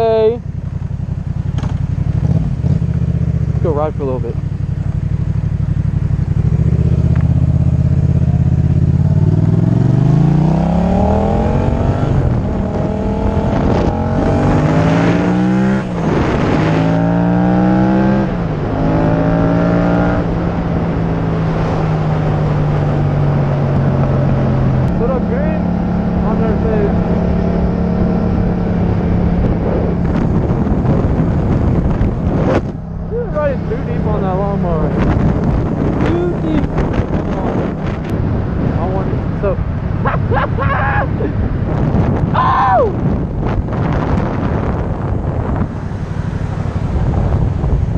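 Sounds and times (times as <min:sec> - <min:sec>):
motorcycle engine revving: 0:00.0 - 0:42.4, 0:43.0 - 0:47.9.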